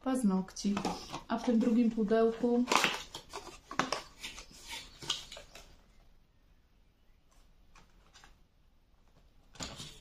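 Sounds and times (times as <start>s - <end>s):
paper rustling: 0.7s - 5.8s.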